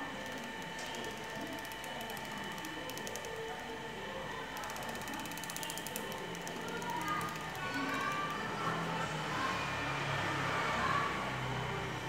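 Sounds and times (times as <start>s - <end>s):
rapid fine ticking: 0.0s - 3.6s, 4.5s - 8.6s.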